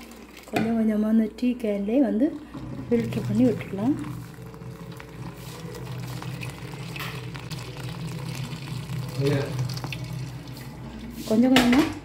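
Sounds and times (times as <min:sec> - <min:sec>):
tea pouring and splashing: 0:00.0 - 0:01.1, 0:02.1 - 0:11.4.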